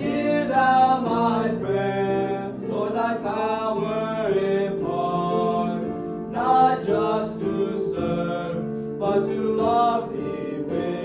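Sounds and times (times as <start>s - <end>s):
boys singing a church song: 0.0s - 11.0s.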